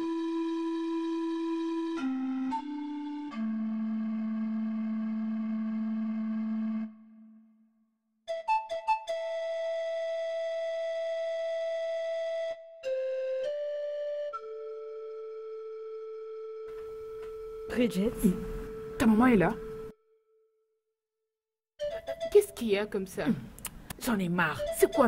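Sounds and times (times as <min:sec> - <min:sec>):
steady plain music tone: 0:00.0 - 0:20.6, 0:21.8 - 0:25.0
faint room noise: 0:16.7 - 0:19.9
held synthesizer note: 0:16.7 - 0:20.5
person speaking: 0:17.6 - 0:19.9, 0:22.3 - 0:25.0.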